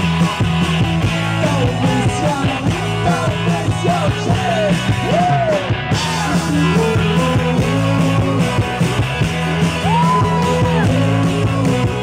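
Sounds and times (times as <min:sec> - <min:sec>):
drums with steady beat: 0:00.0 - 0:12.0
live rock band playing: 0:00.0 - 0:12.0.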